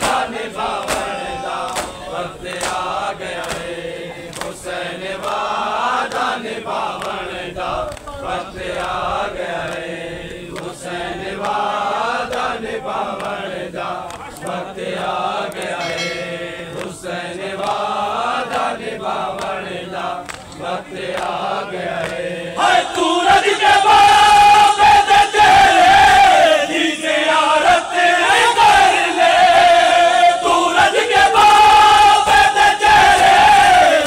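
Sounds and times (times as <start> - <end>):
hands slapping chests: 0.0 - 3.7, 20.2 - 21.4
crowd of men chanting: 0.0 - 34.0.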